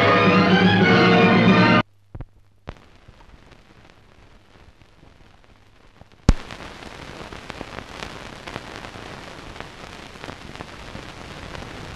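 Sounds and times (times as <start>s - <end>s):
film soundtrack hiss: 0.0s - 11.9s
crackling clicks: 1.8s - 11.9s
sharp pop: 6.3s - 6.6s.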